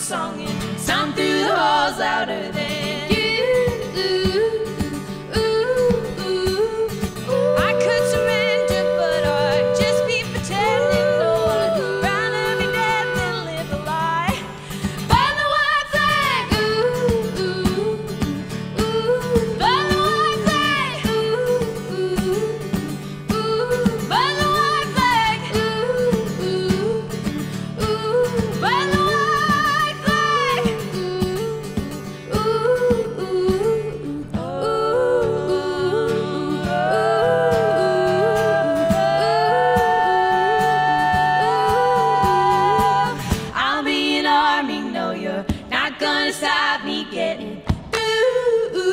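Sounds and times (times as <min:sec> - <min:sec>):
acoustic guitar strumming: 0:00.0 - 0:44.2
female vocal harmony: 0:00.0 - 0:48.9.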